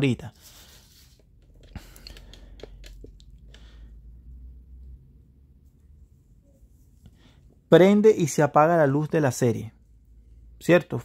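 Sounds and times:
low steady hum: 0.4 - 7.7.

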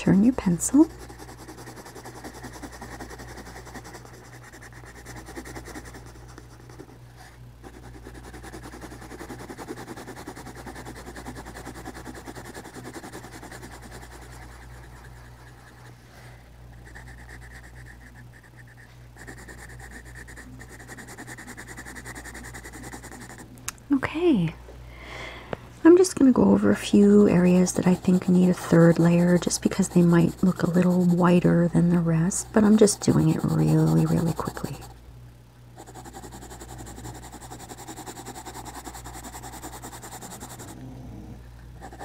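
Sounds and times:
pencil scratching on paper: 0.0 - 15.9, 16.8 - 23.4, 26.8 - 35.0, 35.8 - 40.8, 41.8 - 42.0
steady low hum: 0.0 - 42.0.

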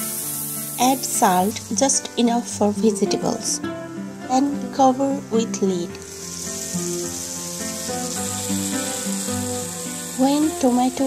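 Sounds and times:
soft background music: 0.0 - 11.0
vegetables sizzling in oil: 0.0 - 11.0.

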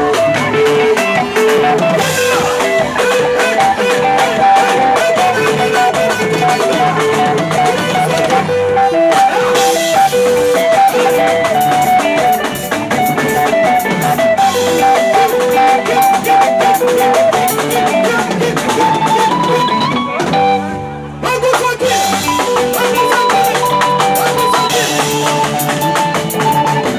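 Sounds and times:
gospel band music: 0.0 - 26.9
lead guitar melody: 0.0 - 26.9.

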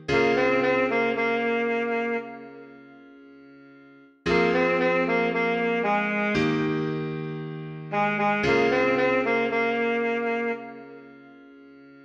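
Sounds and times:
alto saxophone melody: 0.1 - 3.6, 4.3 - 12.0.

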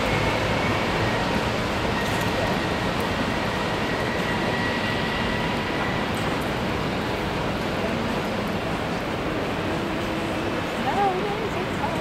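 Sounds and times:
faint high whine: 0.0 - 7.3
city street traffic rumble: 0.0 - 12.0.

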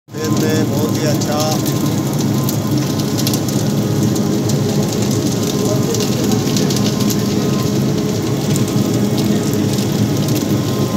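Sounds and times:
machine hum: 0.1 - 10.9.

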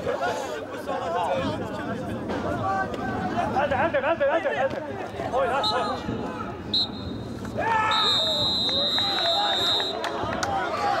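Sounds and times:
players shouting: 5.2 - 11.0
referee's whistle: 6.7 - 7.2, 7.9 - 10.0.

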